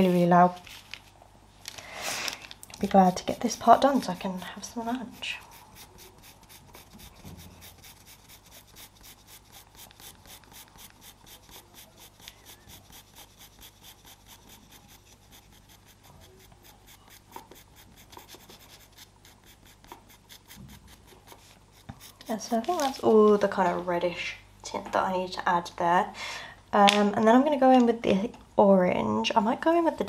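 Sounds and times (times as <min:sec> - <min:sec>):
pencil scratching on paper: 0:02.8 - 0:23.2.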